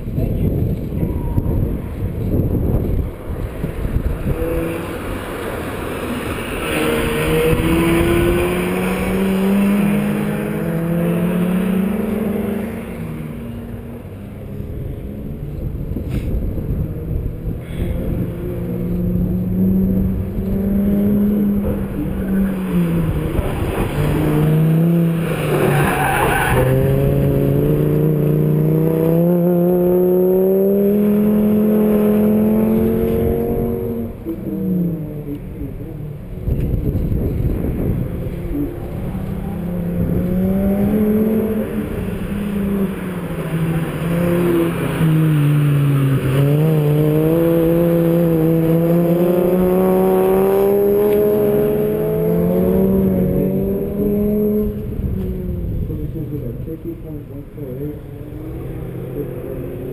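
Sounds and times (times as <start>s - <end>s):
wind rumble on microphone: 0.0s - 4.9s, 14.6s - 22.2s, 36.1s - 42.4s, 52.4s - 57.3s
tyres skidding: 0.1s - 17.0s, 17.6s - 55.4s
car engine revving: 2.2s - 59.9s.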